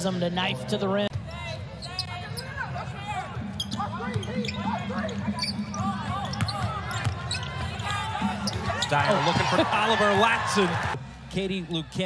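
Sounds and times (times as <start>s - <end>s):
sneakers squeaking: 1.7s - 9.6s.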